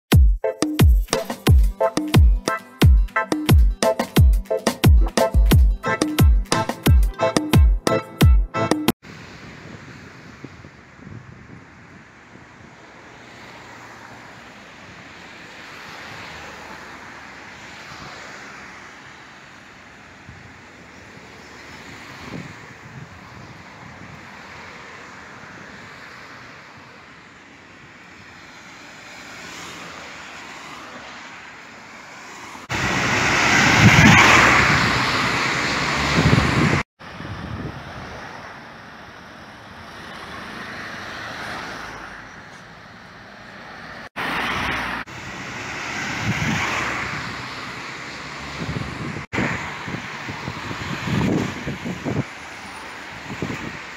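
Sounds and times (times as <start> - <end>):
tyres hissing on wet road: 9.0 - 42.1, 43.9 - 53.9.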